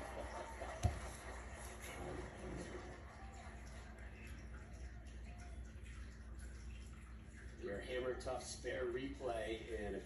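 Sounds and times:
faint television commentary: 0.0s - 6.7s, 7.3s - 10.0s
low room hum: 0.0s - 10.0s.

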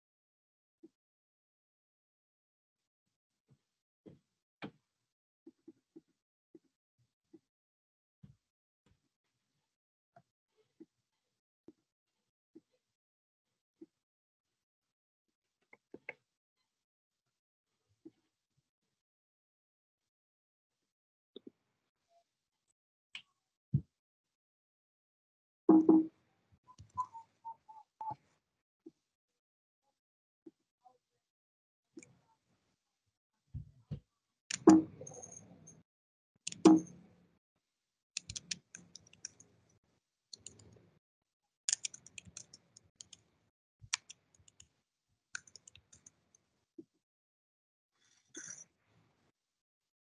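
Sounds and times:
mouse and keyboard clicks: 34.5s - 35.4s, 36.5s - 36.9s, 38.2s - 39.4s, 41.7s - 43.2s, 43.9s - 44.6s, 45.4s - 46.1s.

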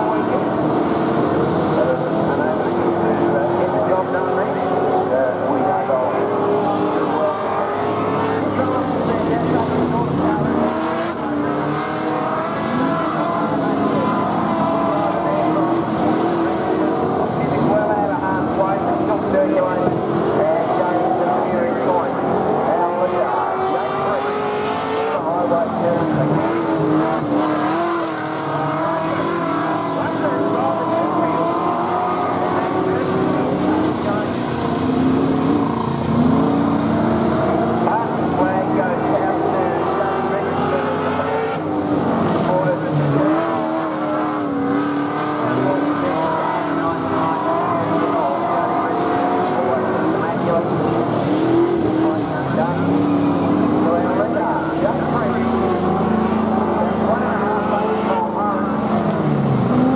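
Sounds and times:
race car engines: 0.0s - 59.9s.

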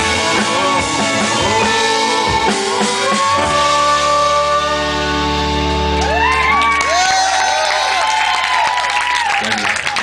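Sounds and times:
audience cheering and clapping: 5.9s - 10.0s.

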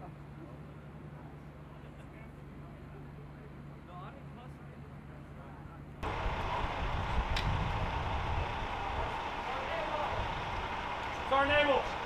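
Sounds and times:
single click: 7.3s - 7.5s.

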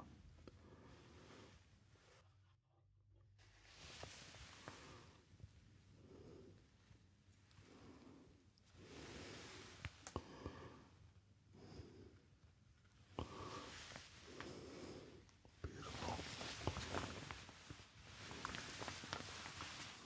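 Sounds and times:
gloved hand rustling: 15.7s - 20.0s.

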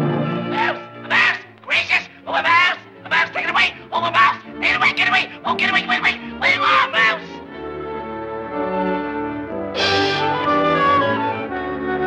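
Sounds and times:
orchestral cartoon music: 0.0s - 12.0s
high-pitched cartoon vocal cries: 0.6s - 7.4s.

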